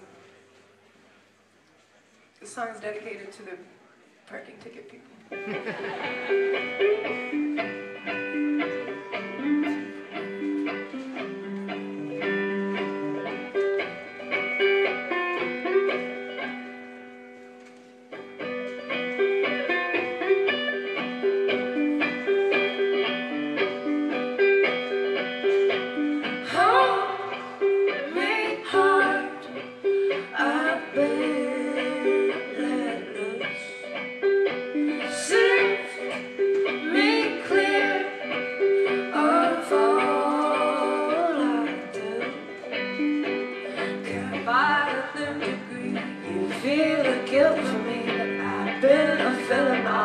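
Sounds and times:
electric guitar: 5.2 - 50.0
plucked guitar figure: 5.4 - 50.0.

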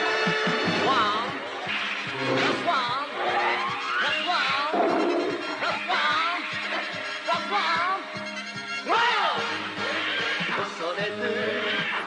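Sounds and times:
anime soundtrack music: 0.0 - 10.8.

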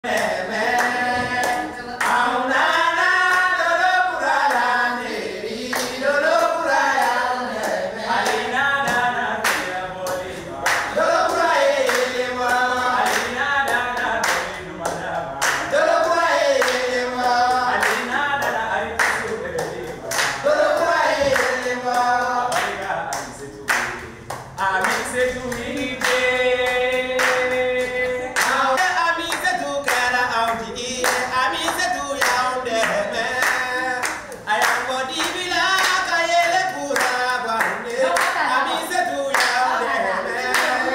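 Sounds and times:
group singing a cappella: 0.0 - 40.9
hands clapping on a beat: 0.1 - 3.6, 5.6 - 40.9.

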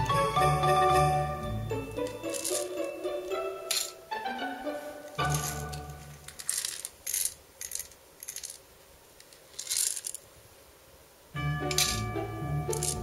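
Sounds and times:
background music: 0.0 - 6.2, 11.4 - 13.0
pellets clinking into metal tray: 2.0 - 3.0, 3.7 - 4.0, 5.2 - 8.6, 9.5 - 10.2, 11.7 - 13.0.

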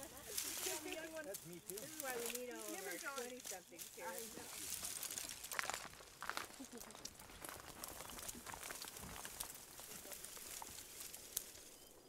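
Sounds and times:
dry leaves rustling and crackling: 0.0 - 12.0.

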